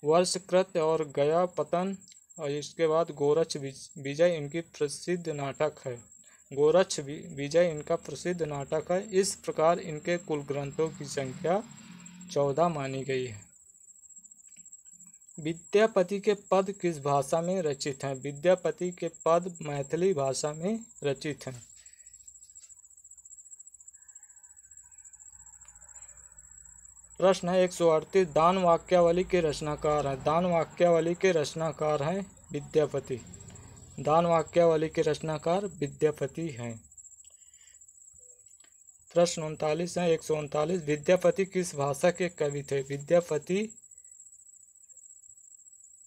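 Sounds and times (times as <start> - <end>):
insect trill: 0.0 - 46.0
steady high-pitched tone: 0.0 - 46.0
weak low hum: 24.9 - 36.9.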